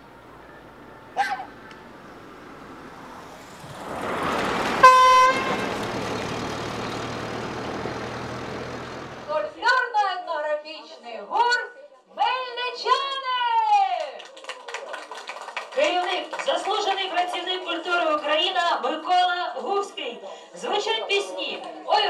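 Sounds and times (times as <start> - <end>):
car driving past: 0.0 - 9.6
voices: 0.0 - 10.2
car horn honk: 4.7 - 6.3.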